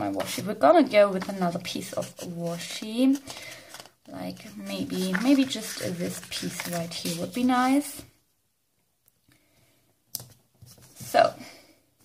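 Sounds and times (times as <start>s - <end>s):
paper handling sounds: 0.2s - 8.0s.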